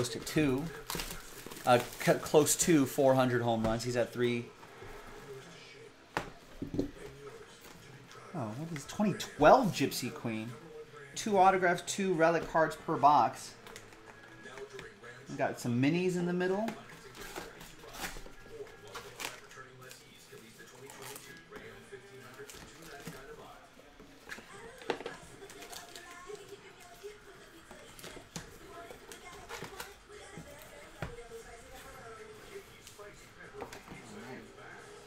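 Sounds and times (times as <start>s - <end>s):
cardboard box and packs rustling: 0.0s - 4.1s
faint background music: 0.0s - 35.0s.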